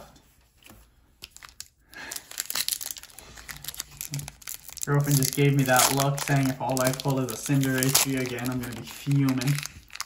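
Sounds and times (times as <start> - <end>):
foil wrapper tearing and crinkling: 1.2 - 10.0.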